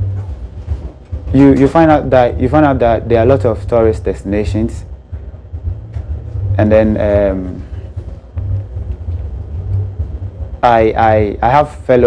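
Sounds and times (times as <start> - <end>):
low uneven rumble: 0.0 - 12.0.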